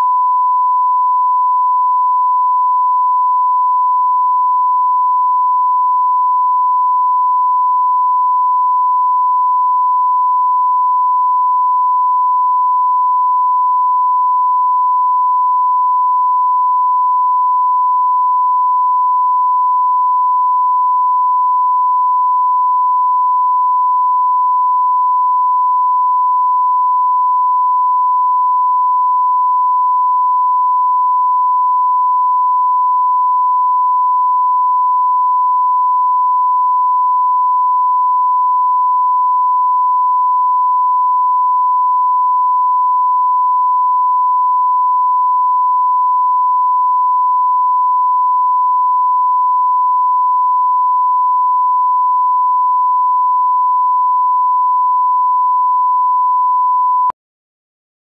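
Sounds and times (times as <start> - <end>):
steady test tone beep: 0.0 - 57.2.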